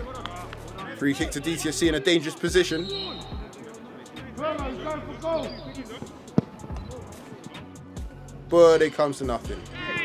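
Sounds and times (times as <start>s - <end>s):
faint voices: 0.0s - 7.8s
background music: 0.0s - 10.0s
football kicked thump: 6.3s - 6.8s.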